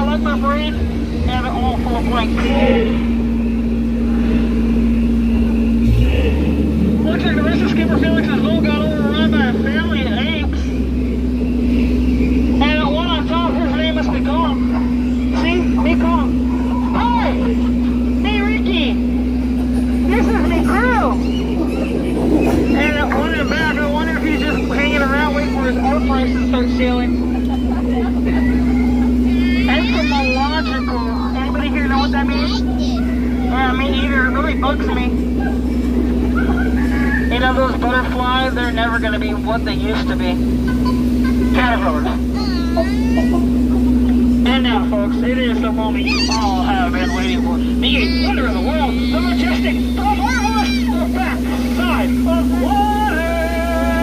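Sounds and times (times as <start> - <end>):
boat motor humming: 0.0 - 54.0
wavering voices or calls: 0.0 - 54.0.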